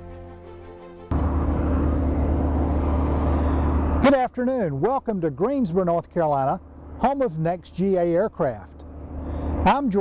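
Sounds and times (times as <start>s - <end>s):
background music: 0.0s - 1.2s
airplane engine and propeller droning: 0.0s - 10.0s.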